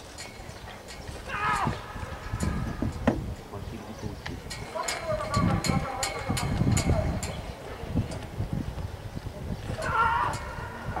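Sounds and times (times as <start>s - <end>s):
person shouting: 1.3s - 1.8s, 9.8s - 11.0s.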